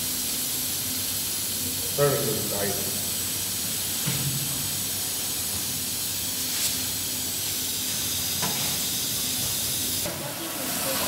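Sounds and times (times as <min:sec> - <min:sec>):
machinery hissing and humming: 0:00.0 - 0:11.0.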